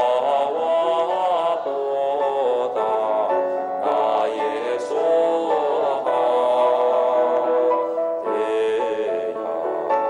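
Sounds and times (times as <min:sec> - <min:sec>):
chant sung in long held notes: 0:00.0 - 0:10.0.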